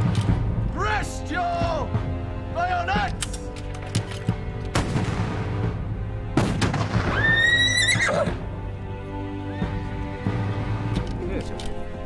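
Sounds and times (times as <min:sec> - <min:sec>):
background music: 0:00.0 - 0:12.0
cannon shot: 0:06.4 - 0:07.3
horse whinnying: 0:07.1 - 0:08.4.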